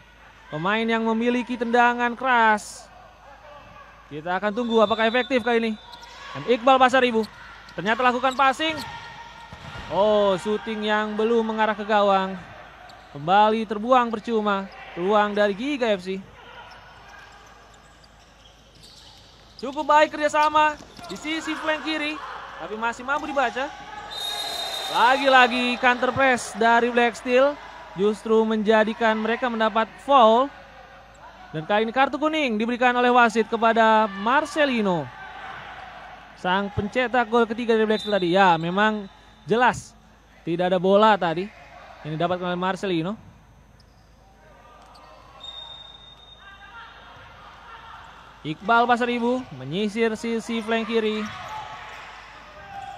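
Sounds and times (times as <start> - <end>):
sports hall crowd ambience: 0.0 - 52.9
referee whistle: 4.3 - 11.6, 16.7 - 27.2, 36.8 - 40.3, 43.8 - 52.9
ball bouncing on court: 8.3 - 10.1, 20.4 - 21.2.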